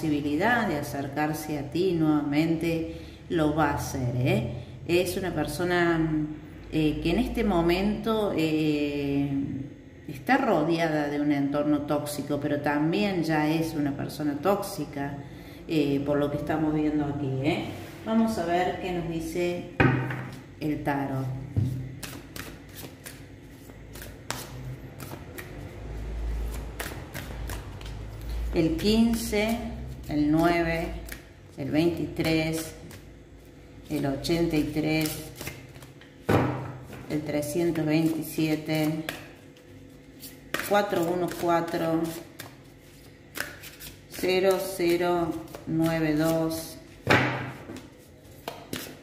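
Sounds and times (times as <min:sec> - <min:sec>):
cards being shuffled: 0:21.7 - 0:25.8, 0:34.6 - 0:36.1, 0:38.1 - 0:46.6.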